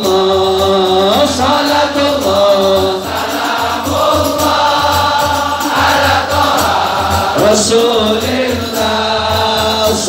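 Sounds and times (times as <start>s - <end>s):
men singing devotional song: 0.0s - 10.0s
steady low beat: 0.1s - 9.9s.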